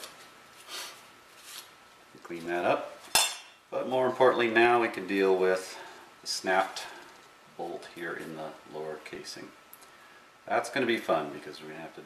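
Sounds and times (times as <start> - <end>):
soft rustles of gloved hands: 0.0 - 2.8.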